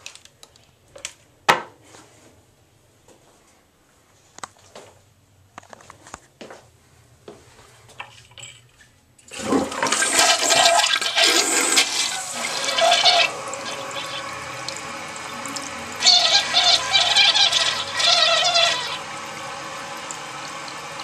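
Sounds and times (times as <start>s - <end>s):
toilet flushing: 9.2s - 21.0s.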